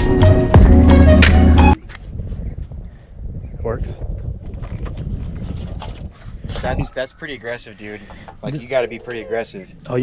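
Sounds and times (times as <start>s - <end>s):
wind buffeting microphone: 1.8s - 10.0s.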